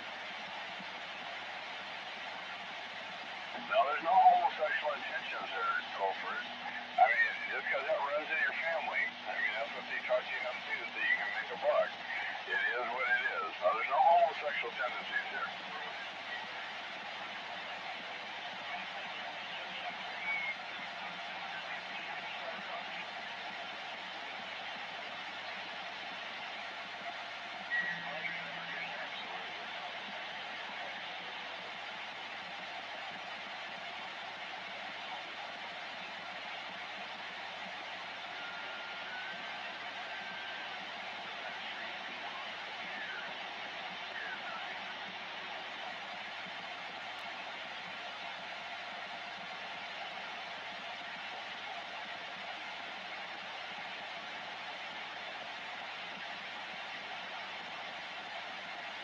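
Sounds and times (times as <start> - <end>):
radio static hiss: 0.0 - 59.0.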